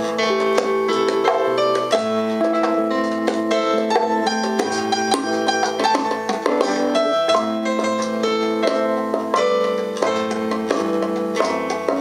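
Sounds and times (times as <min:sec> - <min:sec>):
electric guitar: 0:00.0 - 0:12.0
keyboard chords: 0:00.0 - 0:12.0.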